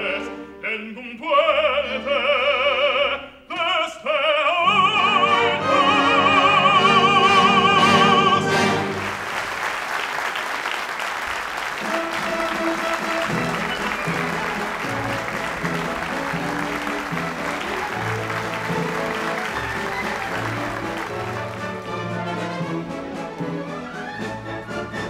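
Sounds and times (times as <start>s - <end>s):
man singing: 0.0s - 8.9s
orchestral music: 4.6s - 9.4s, 11.7s - 25.0s
audience applauding: 7.3s - 22.8s.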